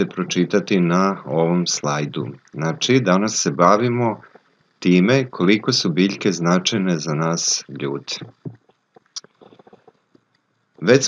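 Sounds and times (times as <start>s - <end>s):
man talking: 0.0s - 8.5s.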